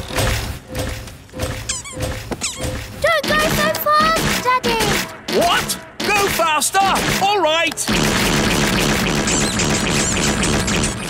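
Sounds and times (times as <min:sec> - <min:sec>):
short rising squeaks: 0:00.8 - 0:03.1
cartoon machine sound effects: 0:01.6 - 0:07.3.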